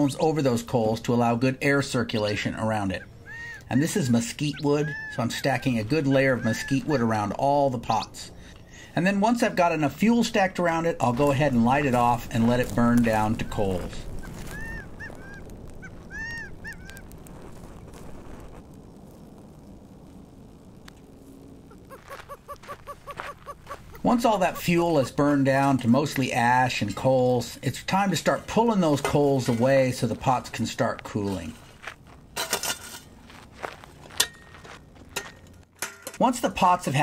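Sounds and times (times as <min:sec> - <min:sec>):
low outdoor noise: 0:00.0 - 0:37.0
birds calling: 0:02.8 - 0:09.0, 0:12.9 - 0:17.1, 0:21.7 - 0:25.4
shovel scraping through ash: 0:11.0 - 0:14.7, 0:32.4 - 0:33.2.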